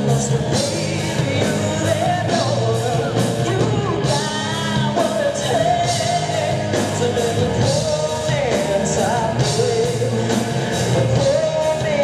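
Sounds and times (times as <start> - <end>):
bass guitar: 0.0 - 12.0
drums: 0.0 - 12.0
electric guitar: 0.0 - 12.0
woman singing: 0.0 - 12.0.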